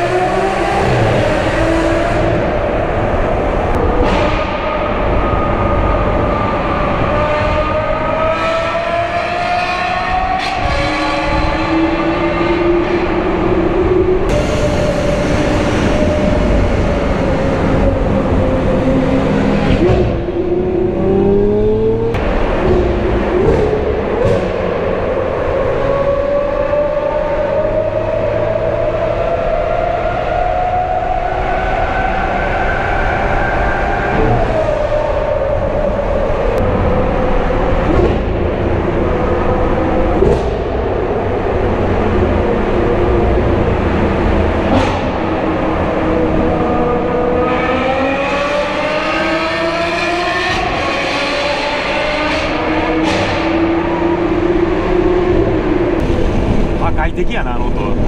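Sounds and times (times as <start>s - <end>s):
car engine accelerating hard: 0.0s - 58.0s.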